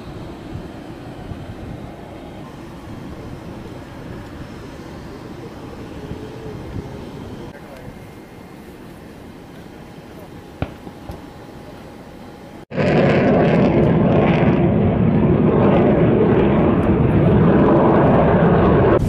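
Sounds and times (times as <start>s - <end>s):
jet aircraft engine noise: 0.0s - 19.0s.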